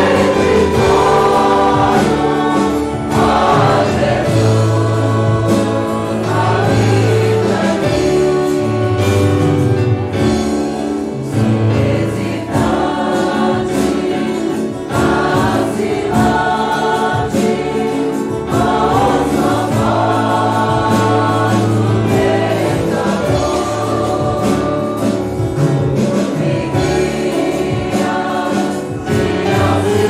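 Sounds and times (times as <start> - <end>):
congregation singing a hymn: 0.0 - 30.0
keyboard accompaniment with bass: 0.0 - 30.0.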